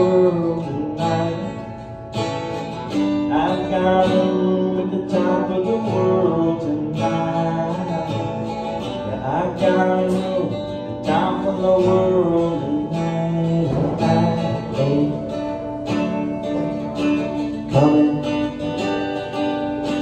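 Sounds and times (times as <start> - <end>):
acoustic guitar strumming chords: 0.0 - 20.0.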